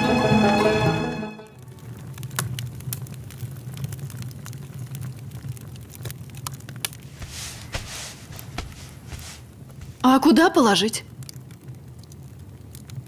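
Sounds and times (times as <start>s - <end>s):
background music: 0.0s - 1.5s.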